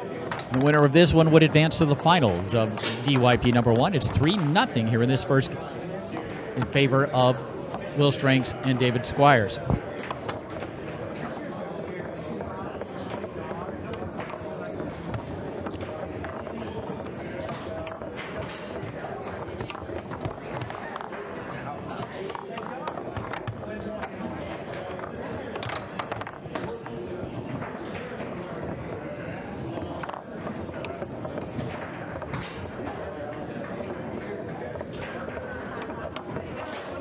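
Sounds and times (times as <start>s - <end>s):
foosball ball and rods clacking: 0.0s - 4.8s, 9.6s - 37.0s
crowd chatter: 0.0s - 37.0s.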